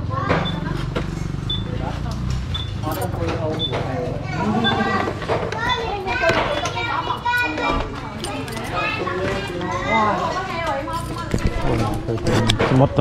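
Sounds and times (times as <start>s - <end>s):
people talking at once: 0.0s - 13.0s.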